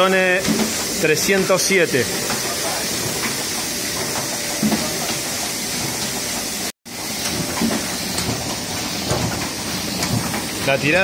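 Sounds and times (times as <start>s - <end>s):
printing press running: 0.0s - 11.0s.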